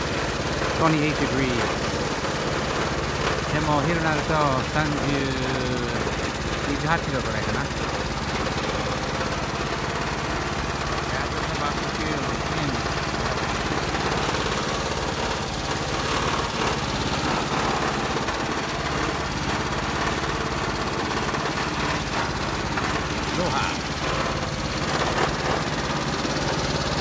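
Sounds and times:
small engine running steadily: 0:00.0 - 0:27.0.

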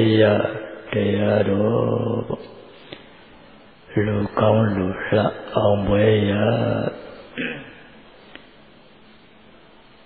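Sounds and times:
person chanting on low pitch: 0:00.0 - 0:02.7, 0:03.9 - 0:07.8.

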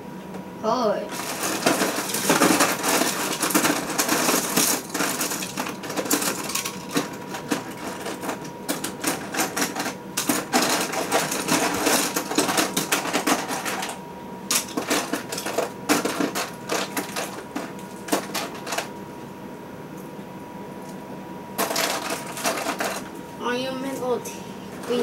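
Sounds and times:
plastic toy pieces clattering: 0:01.1 - 0:18.9, 0:21.6 - 0:23.1.

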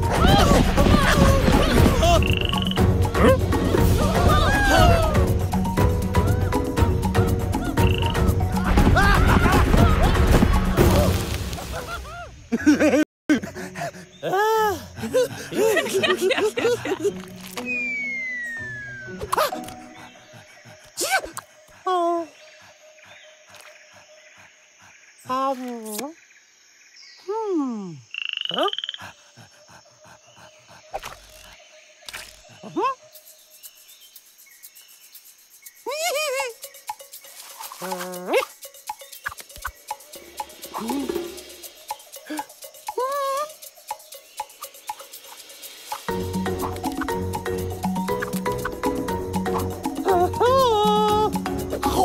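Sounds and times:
background music: 0:00.0 - 0:21.0, 0:36.5 - 0:52.0
insects chirping: 0:00.0 - 0:52.0
cartoon frog croaking: 0:01.9 - 0:03.3, 0:07.6 - 0:08.4, 0:27.9 - 0:29.2, 0:37.7 - 0:45.1
high whistle-like tone: 0:17.6 - 0:19.2.

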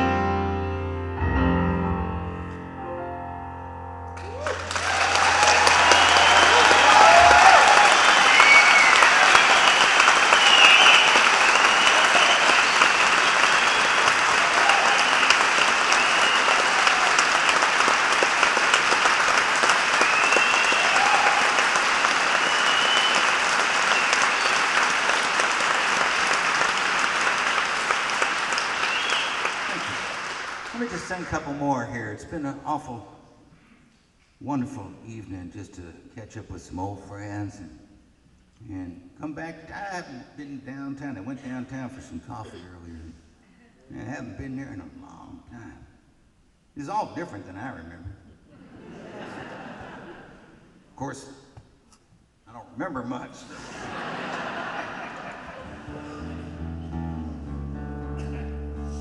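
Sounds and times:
piano ballad chord ringing: 0:00.0 - 0:04.4
whoops from audience: 0:04.2 - 0:13.0, 0:13.8 - 0:15.4, 0:20.0 - 0:21.7
audience applause and cheering: 0:04.2 - 0:31.5.

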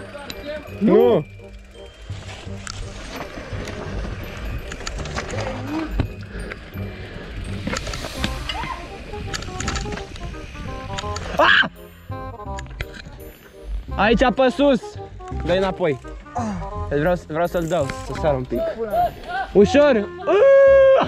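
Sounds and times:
background music: 0:00.0 - 0:21.0
mountain bike rumbling on dirt trail: 0:01.0 - 0:11.0.

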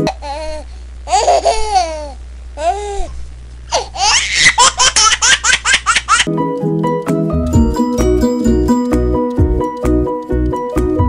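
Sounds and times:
high-pitched laughter: 0:03.8 - 0:06.3
cheerful music with plucked notes: 0:06.3 - 0:11.0.

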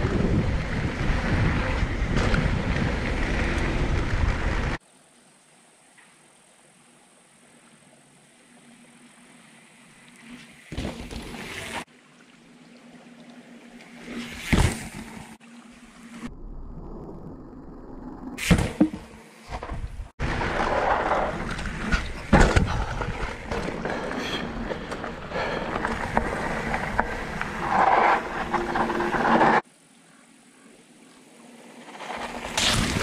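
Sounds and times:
bike tyre noise: 0:00.0 - 0:04.8, 0:18.3 - 0:29.6, 0:31.5 - 0:33.0
wind buffeting microphone: 0:00.0 - 0:04.8
bike rolling past: 0:20.2 - 0:29.6.

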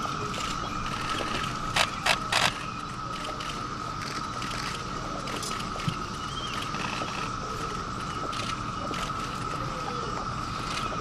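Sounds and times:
steady high-pitched hum: 0:00.0 - 0:11.0.

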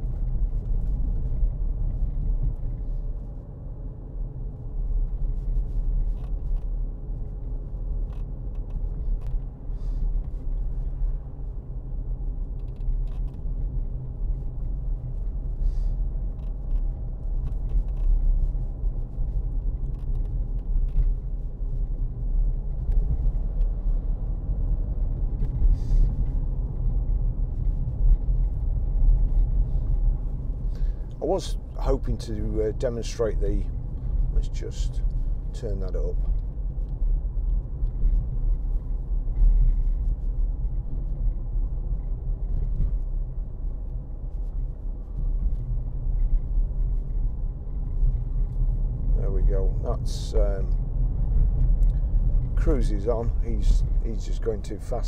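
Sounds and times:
engine and road rumble: 0:00.0 - 0:55.0
faint running hum: 0:00.0 - 0:55.0.

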